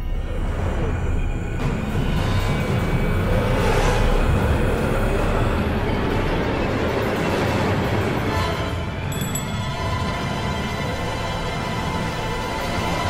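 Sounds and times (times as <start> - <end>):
dark rumbling horror drone: 0.0 - 13.0.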